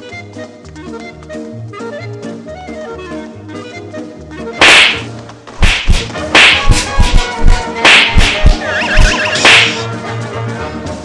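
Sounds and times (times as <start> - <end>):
whip-like cracks: 4.6 - 8.6, 9.4 - 9.8
deep drum thumps: 5.6 - 8.6.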